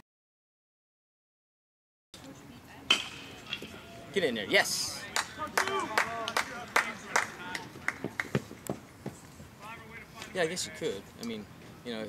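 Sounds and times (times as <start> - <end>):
spectators calling out: 4.9 - 8.2.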